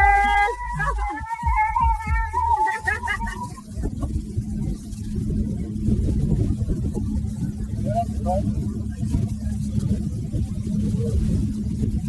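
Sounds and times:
motorboat engine running: 0.0s - 12.0s
wind buffeting microphone: 0.0s - 12.0s.

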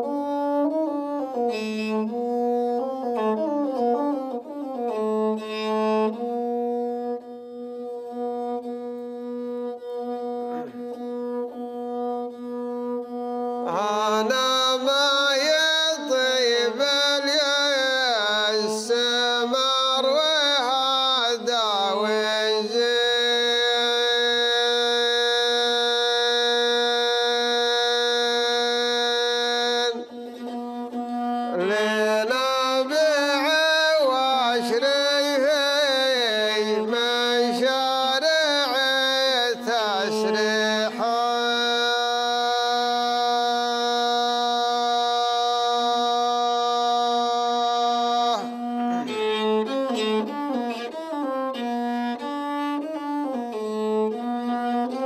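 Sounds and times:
bowed fiddle long note: 0.0s - 55.0s
man singing: 13.6s - 30.2s, 31.5s - 50.9s.

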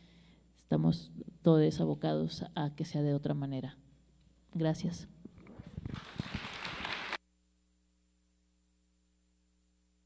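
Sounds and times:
faint hum: 0.0s - 10.0s
audience applause: 5.7s - 7.2s.

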